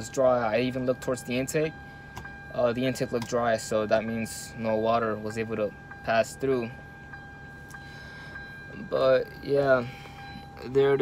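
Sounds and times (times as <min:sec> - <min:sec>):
low hum inside car cabin: 0:00.0 - 0:11.0.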